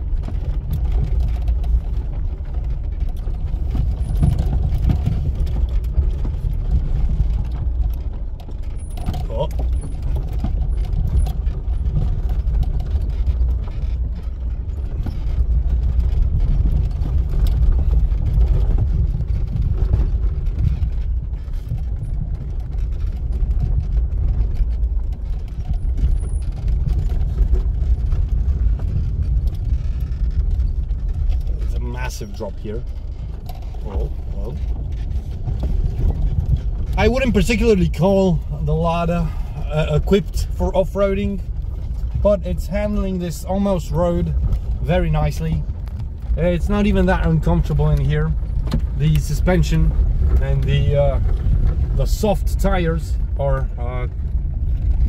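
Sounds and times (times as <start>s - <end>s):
car and tyres rumbling on gravel: 0.0s - 55.0s
car body knocks and rattles: 47.4s - 52.3s.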